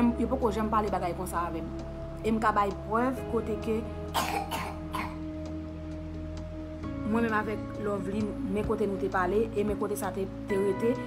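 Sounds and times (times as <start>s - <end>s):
soft background music: 0.0s - 11.0s
woman coughing: 4.1s - 5.2s.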